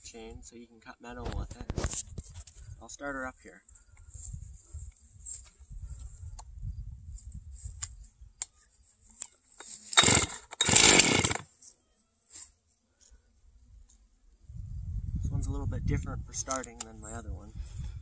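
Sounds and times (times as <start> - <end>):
chainsaw starter cord pulls: 9.6 - 11.5
light clicks and handling: 16.4 - 17.0.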